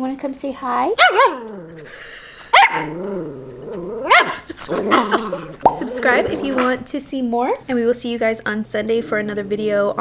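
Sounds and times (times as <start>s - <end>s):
small dog barking: 1.0s - 1.5s, 2.5s - 3.0s, 4.0s - 4.5s.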